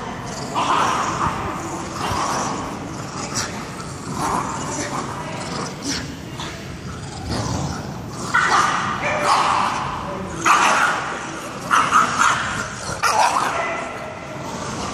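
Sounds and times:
dogs yipping and barking: 8.2 - 14.3.

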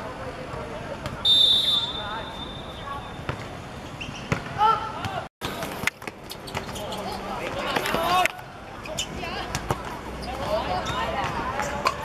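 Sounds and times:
players shouting: 6.8 - 9.6.

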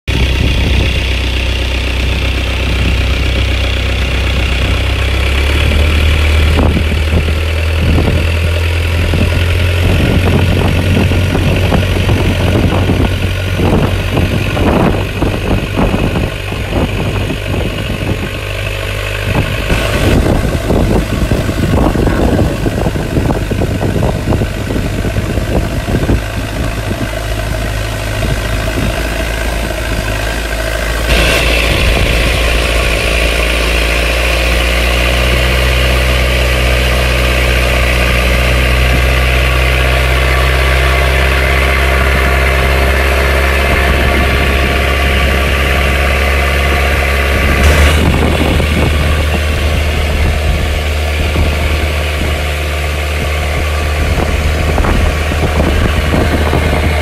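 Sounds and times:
boat engine running: 0.0 - 57.0
wind noise: 0.1 - 57.0.

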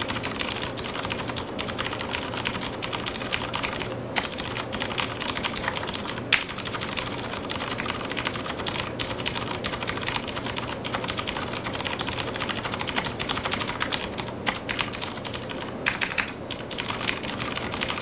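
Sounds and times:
mechanical keyboard typing: 0.0 - 18.0.

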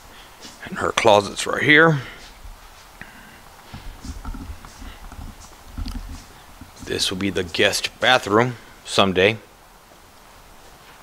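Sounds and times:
footsteps on concrete floor: 2.1 - 8.0
low rumble: 3.4 - 8.7.

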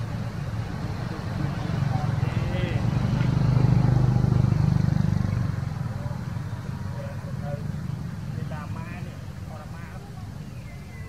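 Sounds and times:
motor vehicle passing: 0.0 - 11.0.

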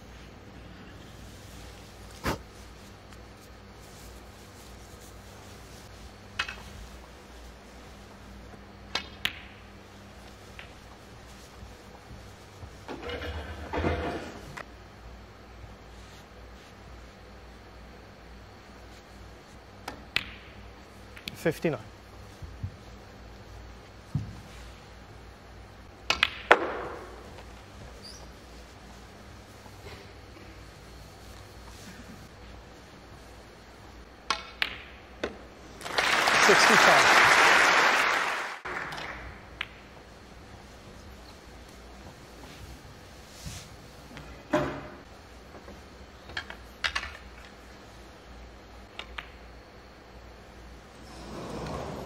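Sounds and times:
faint steady hum: 0.0 - 52.0
snooker balls clicking: 6.2 - 14.7, 19.8 - 21.8, 25.8 - 30.1, 33.2 - 36.0, 38.6 - 42.3, 44.9 - 47.8, 48.8 - 49.8.

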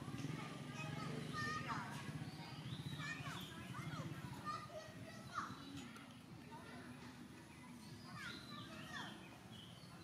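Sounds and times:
crowd chatter with children's voices: 0.0 - 10.0
high chirping calls: 2.1 - 3.9, 7.6 - 10.0.

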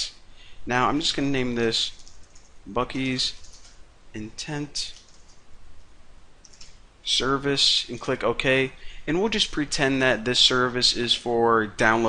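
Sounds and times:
keyboard keys clicking: 3.4 - 3.8, 4.9 - 5.4, 6.4 - 6.8.

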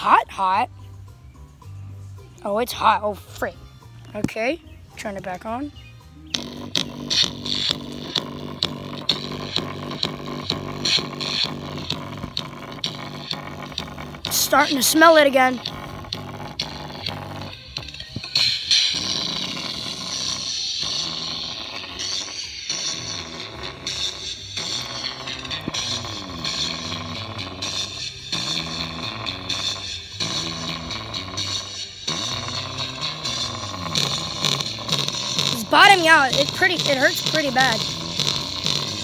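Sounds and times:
overdriven small speaker playing music: 0.0 - 39.0.

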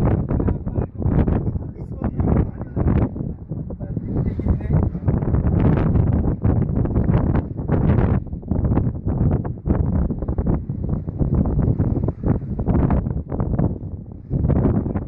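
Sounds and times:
strong wind buffeting microphone: 0.0 - 15.0.

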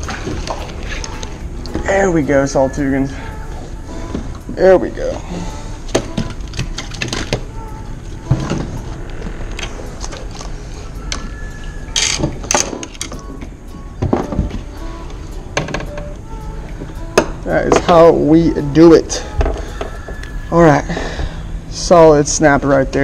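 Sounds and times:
steady low background: 0.0 - 22.6.

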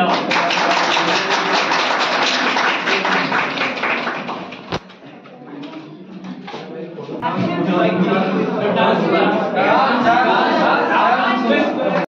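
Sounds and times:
audience applauding: 0.0 - 4.8.

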